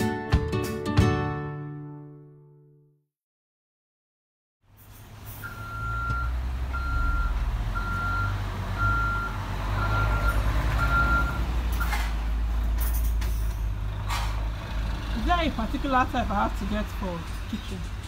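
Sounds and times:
reversing alarm beeping: 5.4s - 12.0s.

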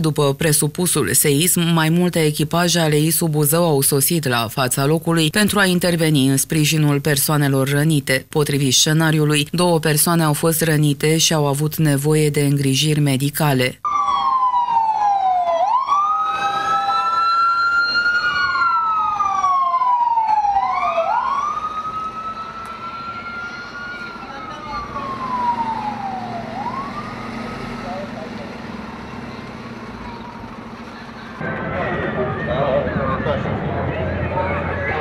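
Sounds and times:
emergency vehicle sirens wailing: 13.8s - 35.0s.

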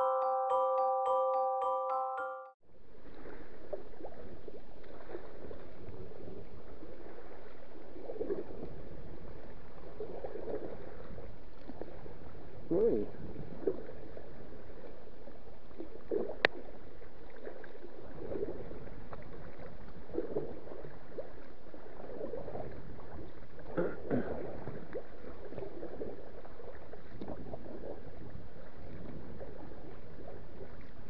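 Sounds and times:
wind and water wash: 2.8s - 31.0s.

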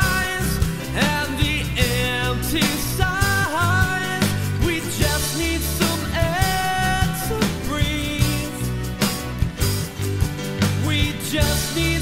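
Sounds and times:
rough rock band playing: 0.0s - 12.0s.

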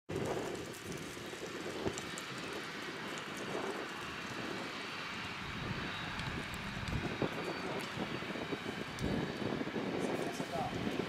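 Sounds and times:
outdoor background rush: 0.1s - 11.0s
faint high whine: 4.4s - 11.0s.

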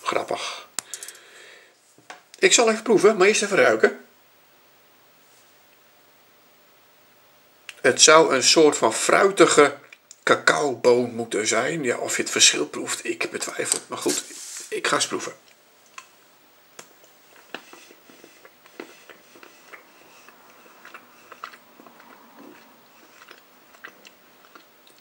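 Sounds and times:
steady low hiss: 0.0s - 25.0s.

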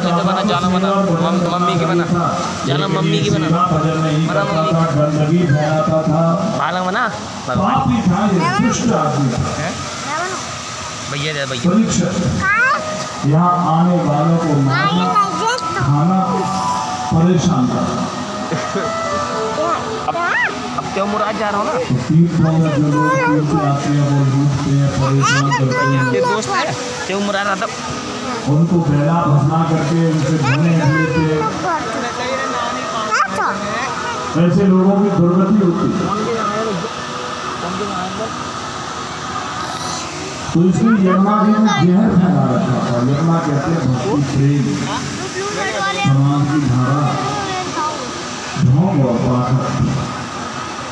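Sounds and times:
faint high tone: 14.7s - 17.8s, 18.8s - 21.0s, 39.6s - 40.3s.

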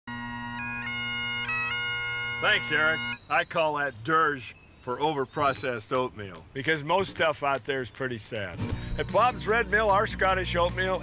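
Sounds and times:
bagpipes playing a slow dirge: 0.1s - 3.3s.

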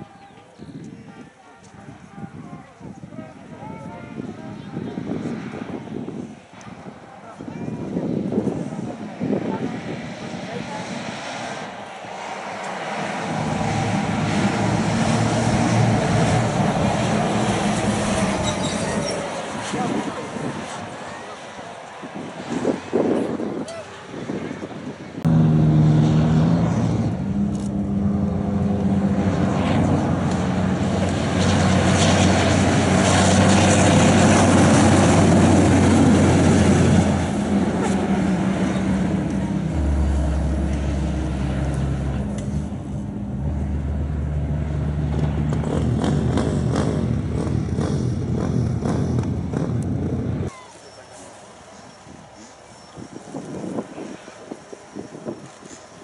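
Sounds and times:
truck engine running hard: 8.6s - 22.1s, 24.1s - 50.5s.

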